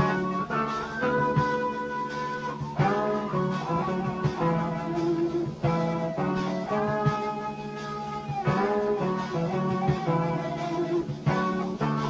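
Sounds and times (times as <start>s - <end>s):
drums: 0.0s - 12.0s
electric guitar bending notes: 0.0s - 12.0s.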